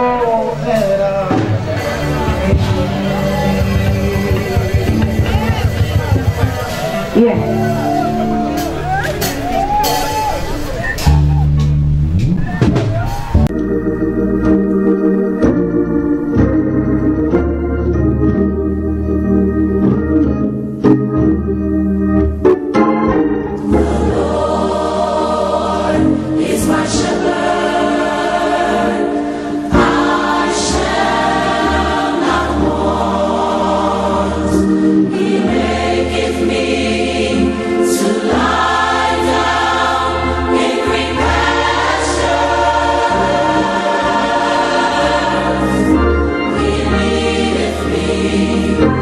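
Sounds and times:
choir singing gospel: 0.0s - 11.4s, 22.8s - 49.0s
steady bass accompaniment: 0.0s - 49.0s.

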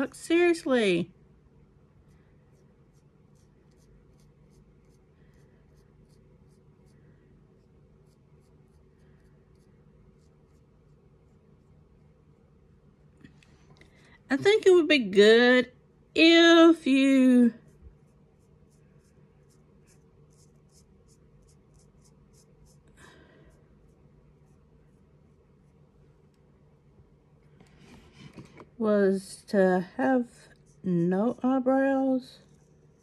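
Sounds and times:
pencil scratching on skin: 1.9s - 12.4s, 17.2s - 23.0s, 23.6s - 26.0s, 30.1s - 33.0s
pen tip scratching skin: 2.5s - 5.1s, 17.7s - 22.8s.

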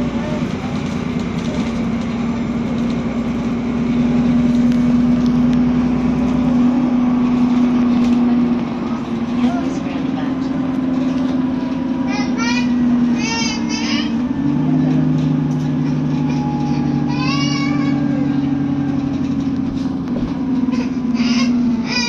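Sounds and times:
bus engine drone: 0.0s - 22.0s
road and tyre noise: 0.0s - 22.0s.

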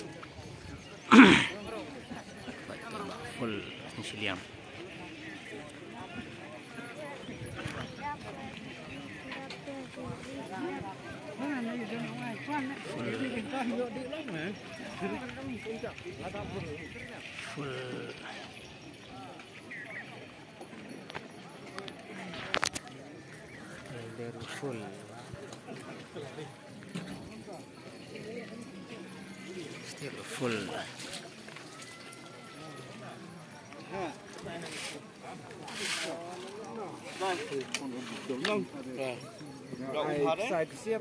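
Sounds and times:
crowd chatter: 0.0s - 41.0s.

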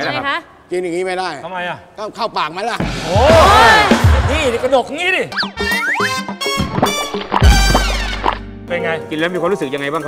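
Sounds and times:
background music: 2.8s - 10.0s
cartoon pitch slides: 5.3s - 8.4s.

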